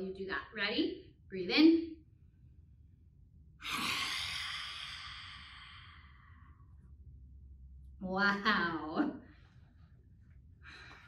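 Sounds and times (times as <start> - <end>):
woman exhaling forcefully: 3.6 - 6.4.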